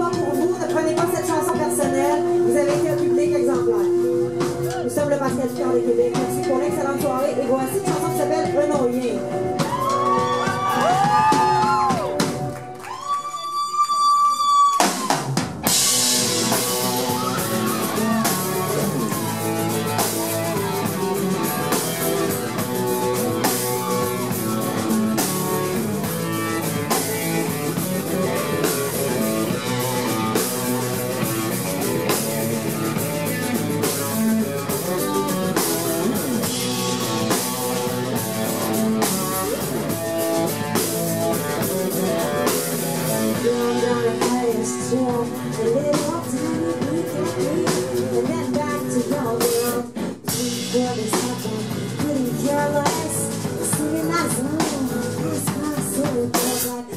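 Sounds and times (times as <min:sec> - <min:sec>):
steady drum beat: 0:00.0 - 0:12.7, 0:14.8 - 0:56.9
rock band playing live: 0:00.0 - 0:13.1, 0:14.8 - 0:56.9
electric guitar: 0:00.0 - 0:13.3, 0:14.7 - 0:56.9.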